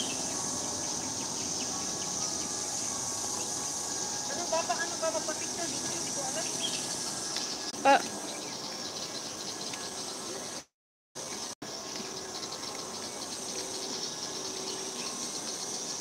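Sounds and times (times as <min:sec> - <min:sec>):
insect chorus pulsing: 0:00.0 - 0:10.6, 0:11.2 - 0:16.0.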